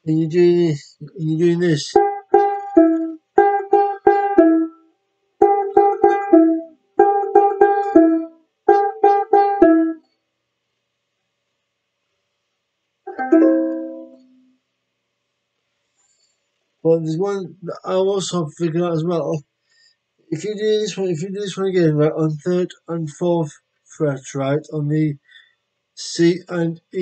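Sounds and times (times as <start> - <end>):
banjolele picking quick notes: 1.0 - 4.7, 5.4 - 10.0, 13.1 - 14.3
banjolele strummed chord: 1.6 - 4.8, 5.4 - 10.0, 13.1 - 14.3.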